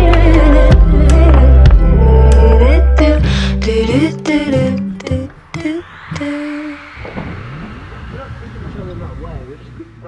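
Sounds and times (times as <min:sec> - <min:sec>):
wavering voice-like pitches: 0:04.9 - 0:09.6
tone gliding upward: 0:04.9 - 0:10.0.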